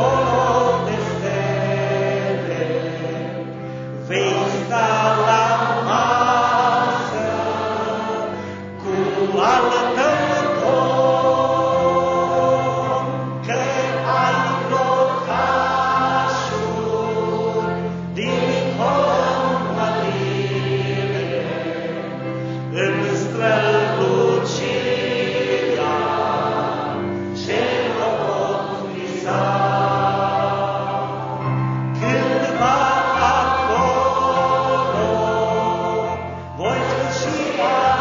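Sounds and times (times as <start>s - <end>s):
congregation singing a hymn: 0.0s - 38.0s.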